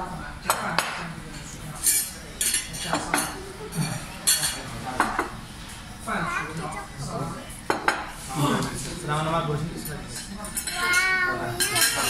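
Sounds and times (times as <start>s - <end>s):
plates and cutlery clinking: 0.4s - 5.9s, 7.6s - 12.0s.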